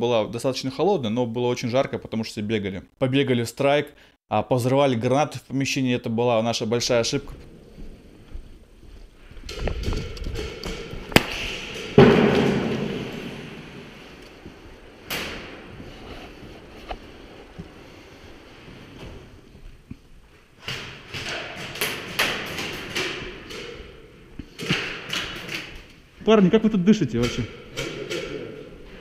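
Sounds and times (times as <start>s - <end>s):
sharp cracks: 9.4s - 16.1s, 20.6s - 26.0s
grenade bang echoing in a hall: 11.1s - 14.2s.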